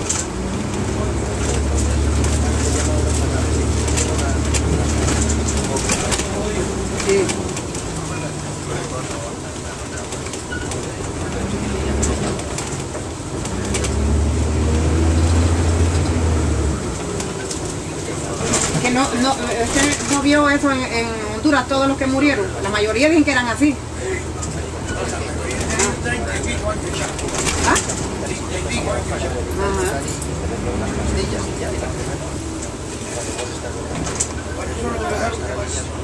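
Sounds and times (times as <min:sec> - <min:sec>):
bus diesel engine drone: 0:00.0 - 0:36.0.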